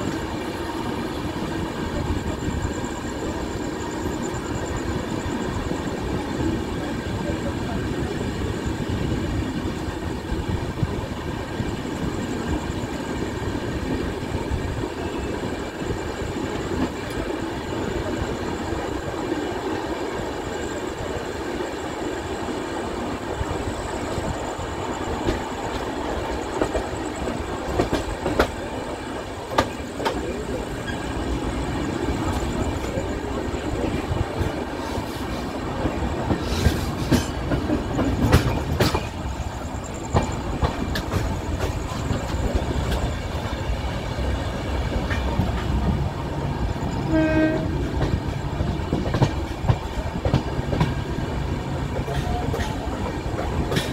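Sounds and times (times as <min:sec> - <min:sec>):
train wheels rumbling on rail: 0:00.0 - 0:53.9
sharp clacks of rail joints: 0:26.5 - 0:28.6, 0:35.8 - 0:39.2, 0:40.0 - 0:43.3, 0:47.5 - 0:51.0, 0:51.9 - 0:53.9.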